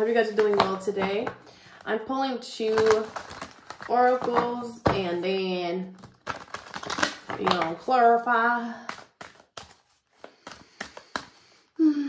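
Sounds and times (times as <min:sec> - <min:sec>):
cards being shuffled: 0:00.0 - 0:01.3, 0:02.6 - 0:05.2, 0:06.0 - 0:08.1, 0:08.8 - 0:11.7.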